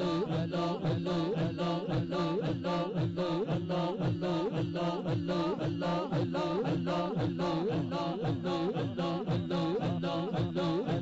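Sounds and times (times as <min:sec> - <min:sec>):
men chanting over loudspeaker: 0:00.0 - 0:11.0.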